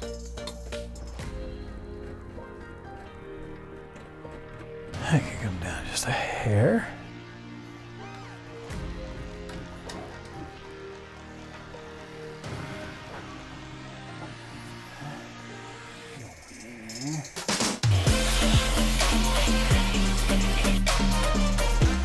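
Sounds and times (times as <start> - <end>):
music with heavy bass and beat: 16.9 - 22.0.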